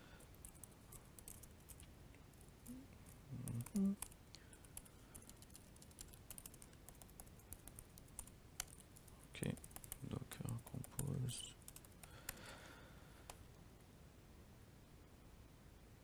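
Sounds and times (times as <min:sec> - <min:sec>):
typing on laptop keyboard: 0:00.2 - 0:01.8, 0:02.6 - 0:12.6.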